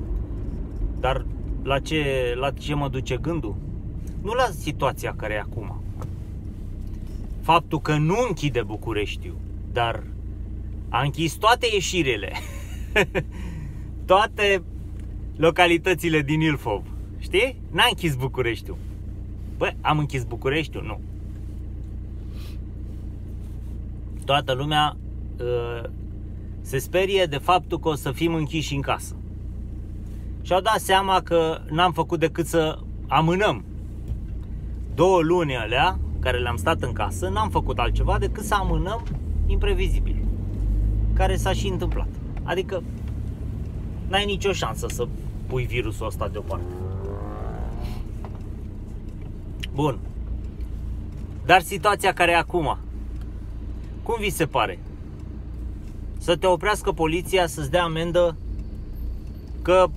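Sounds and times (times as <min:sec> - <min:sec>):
low rumble: 0:00.0 - 0:31.8, 0:32.6 - 0:59.9
van engine idling: 0:00.0 - 0:59.9.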